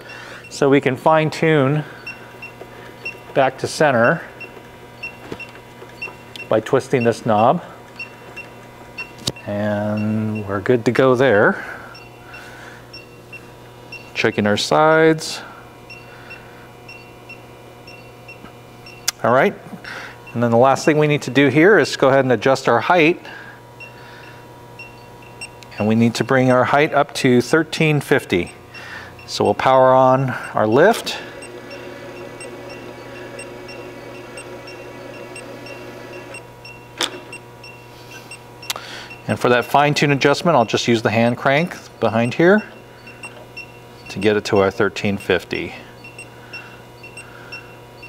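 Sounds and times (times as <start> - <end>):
electric lift motor running: 0.0 - 48.0
steady low hum: 0.0 - 48.0
high electronic beeps: 30.3 - 37.8, 38.6 - 45.4.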